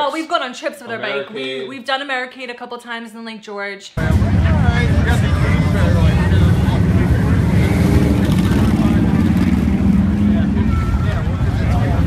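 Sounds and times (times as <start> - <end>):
crowd voices: 4.0 - 12.0
motorcycle engines rumbling: 4.0 - 12.0.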